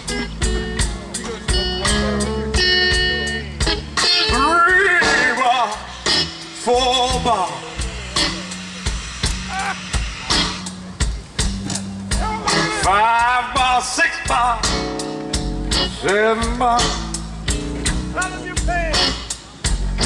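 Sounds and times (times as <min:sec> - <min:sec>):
drum beat: 0:00.0 - 0:20.0
live blues band playing: 0:00.0 - 0:20.0
sliding bending guitar lead: 0:00.0 - 0:20.0.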